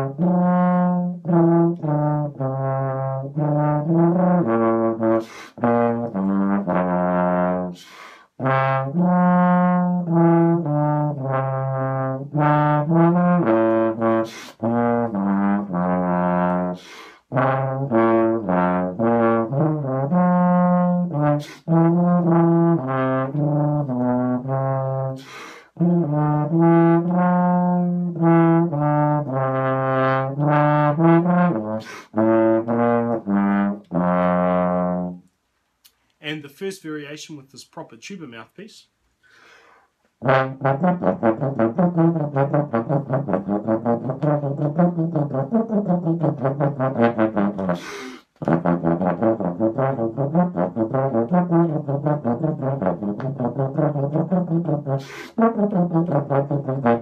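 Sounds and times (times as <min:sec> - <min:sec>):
contrabass trombone melody: 0:00.0 - 0:35.3, 0:40.2 - 0:57.0.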